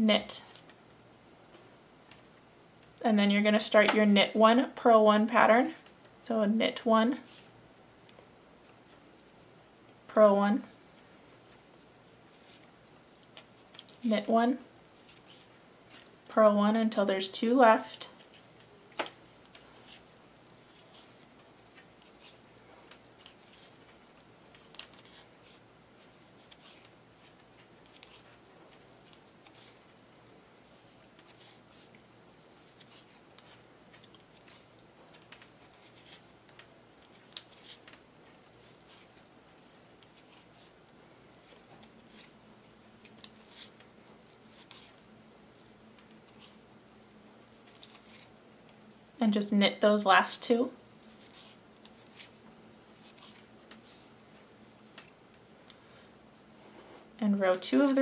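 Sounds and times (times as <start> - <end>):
faint low hum: 0.0 - 58.0
yarn rustling: 17.4 - 49.2, 50.1 - 58.0.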